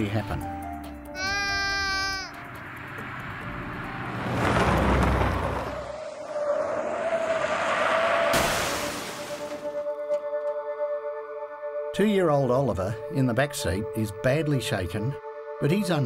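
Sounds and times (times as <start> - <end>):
car crashing into tree: 8.1 - 9.9.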